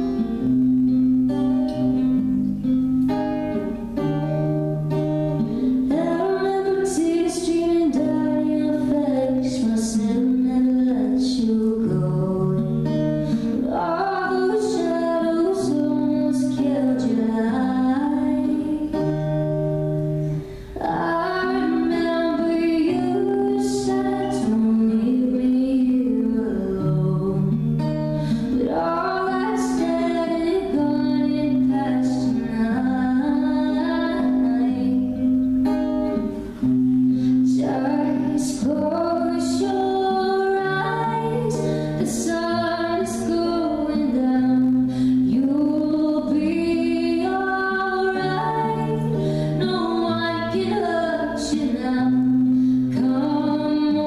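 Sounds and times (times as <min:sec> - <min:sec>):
strummed acoustic guitar: 0:00.0 - 0:54.0
woman singing: 0:00.0 - 0:54.0
singer breathing: 0:13.1 - 0:13.6, 0:20.1 - 0:20.8, 0:28.0 - 0:28.6, 0:36.4 - 0:37.5, 0:41.6 - 0:42.0, 0:44.8 - 0:45.3, 0:49.1 - 0:49.6, 0:52.5 - 0:52.9.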